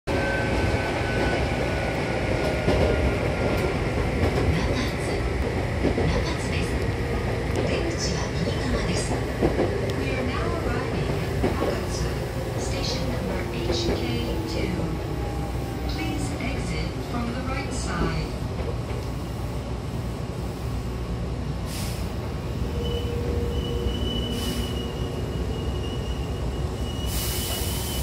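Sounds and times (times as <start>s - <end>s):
train wheels rumbling on rail: 0.1s - 28.0s.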